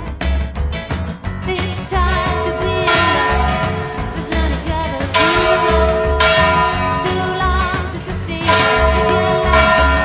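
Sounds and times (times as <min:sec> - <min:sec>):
music with steady bass beat: 0:00.0 - 0:10.0
church bell ringing: 0:02.5 - 0:04.2, 0:05.2 - 0:07.7, 0:08.5 - 0:10.0.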